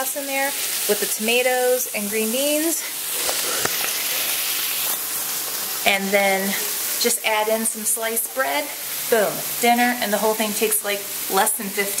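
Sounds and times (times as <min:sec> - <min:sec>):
chicken sizzling in a skillet: 0:00.0 - 0:12.0.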